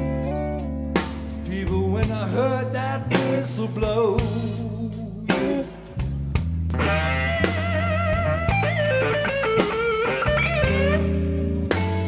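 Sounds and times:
electric guitar lead with string bends: 0.0s - 4.4s, 5.3s - 12.0s
bass and drums: 0.0s - 12.0s.

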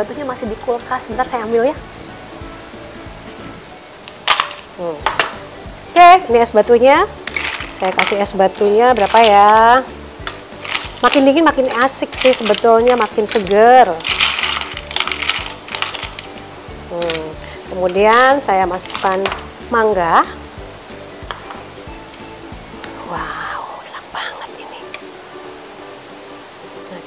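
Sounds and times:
quiet background music: 0.0s - 27.0s
ice cubes clattering in bowl: 4.2s - 5.4s, 7.1s - 20.0s
bowl set on glass table: 4.2s - 5.5s, 7.0s - 22.2s.

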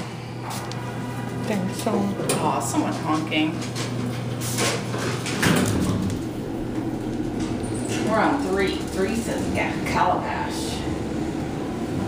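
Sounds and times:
elevator car rumbling: 0.4s - 12.0s
elevator doors sliding shut: 4.2s - 12.0s.

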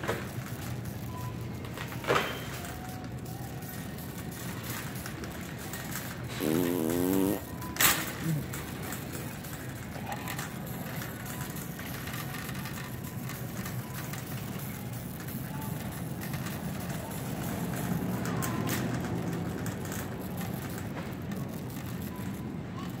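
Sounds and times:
shopping cart wheels rumbling: 0.0s - 23.0s.

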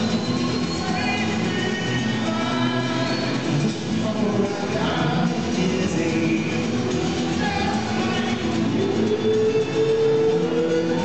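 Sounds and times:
high whistle-like tone: 0.0s - 1.8s
acoustic guitars playing: 0.0s - 11.0s.

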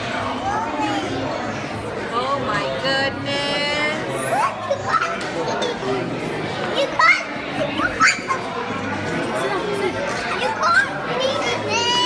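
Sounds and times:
dining room chatter: 0.0s - 12.0s.

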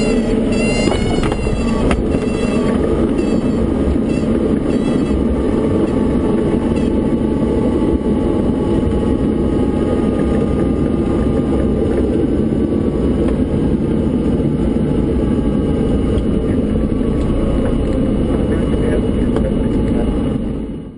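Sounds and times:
aircraft engine and propeller: 0.0s - 20.9s.

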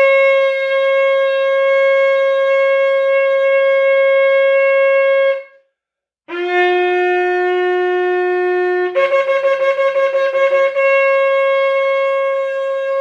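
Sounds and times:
shofar blowing long note: 0.0s - 5.6s, 6.3s - 13.0s.

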